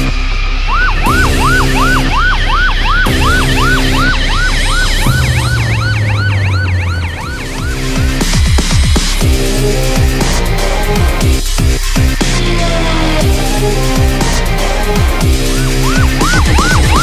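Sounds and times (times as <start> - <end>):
music with sustained chords and bass: 0.0 - 17.0
emergency siren yelping: 0.6 - 8.8, 14.6 - 17.0.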